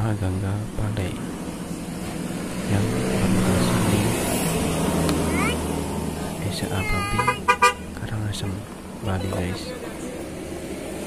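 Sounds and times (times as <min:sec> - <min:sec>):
vehicle engine rumble: 0:00.0 - 0:11.0
vehicle horn toots: 0:07.1 - 0:07.9.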